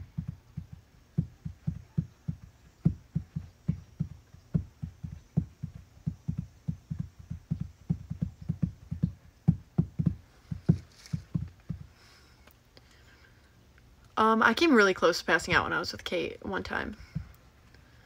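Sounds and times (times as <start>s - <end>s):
soft low thumps: 0.0s - 12.2s, 16.9s - 17.6s.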